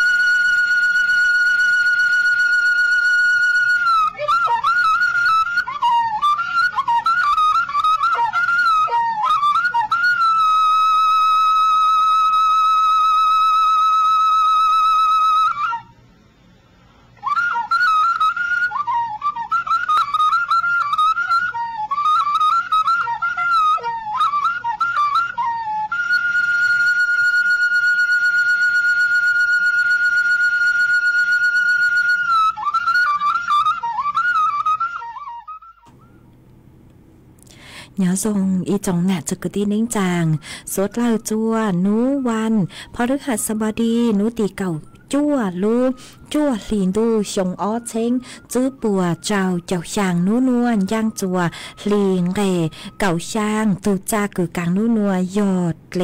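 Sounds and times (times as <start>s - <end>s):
flute-like long note: 0.0s - 16.0s, 17.2s - 36.2s.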